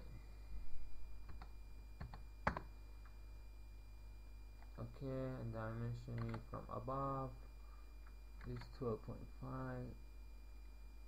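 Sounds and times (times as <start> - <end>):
computer keyboard keystrokes: 1.3 - 2.7, 6.1 - 6.4, 8.4 - 8.7.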